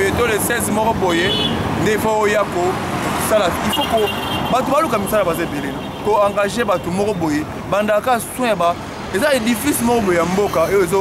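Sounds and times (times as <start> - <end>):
man talking: 0.0 - 11.0
road traffic: 0.0 - 11.0.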